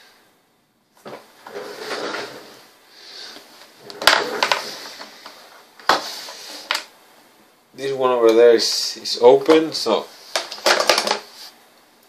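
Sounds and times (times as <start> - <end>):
rustling of handled objects on desk: 3.3 - 6.9.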